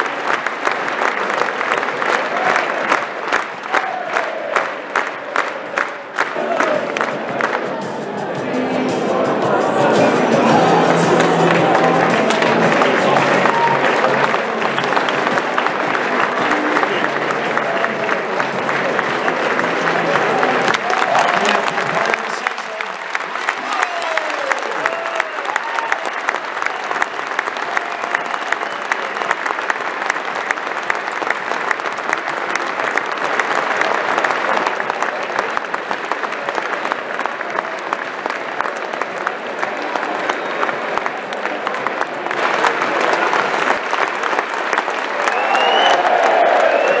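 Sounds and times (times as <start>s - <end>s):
crowd applauding: 0.0s - 47.0s
crowd shouts: 3.6s - 15.0s, 20.0s - 22.8s, 23.5s - 29.1s, 45.1s - 47.0s.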